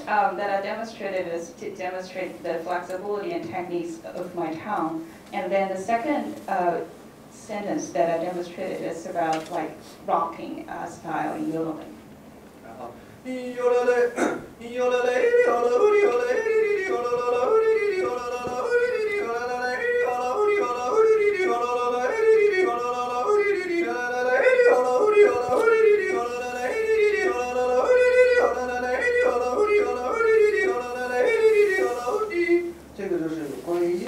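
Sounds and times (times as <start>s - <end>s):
man yodeling: 13.3s - 32.8s.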